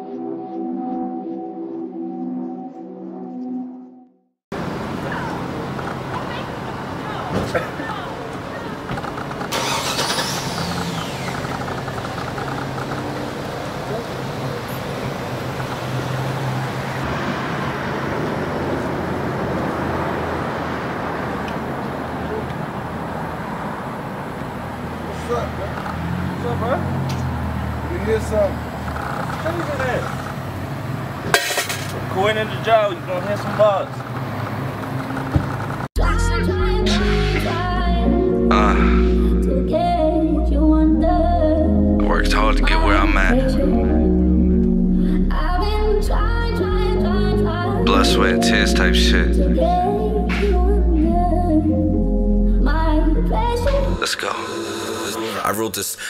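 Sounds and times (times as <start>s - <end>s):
car engine humming: 4.5s - 56.0s
sudden hissing rush: 36.8s - 37.7s, 38.5s - 39.4s.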